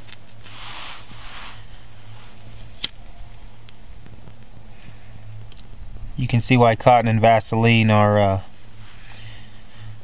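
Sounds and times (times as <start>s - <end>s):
low steady hum: 0.0s - 10.0s
short scraping hiss: 0.5s - 2.4s.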